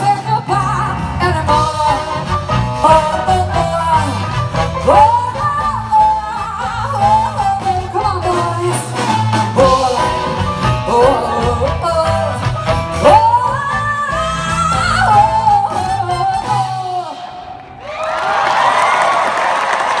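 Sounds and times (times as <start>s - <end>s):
woman singing: 0.0s - 17.4s
jazz band playing: 0.0s - 17.5s
audience cheering and applauding: 17.6s - 20.0s.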